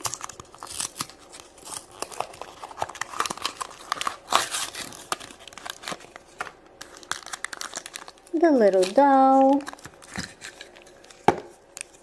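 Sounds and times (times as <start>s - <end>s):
cardboard box tearing and crackling: 0.0s - 6.2s.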